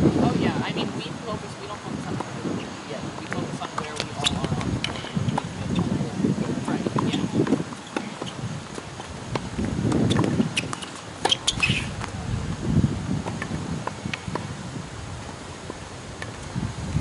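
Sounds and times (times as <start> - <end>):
murmur with faint voices: 0.1 - 8.4
tennis balls struck by racquets: 6.9 - 12.2.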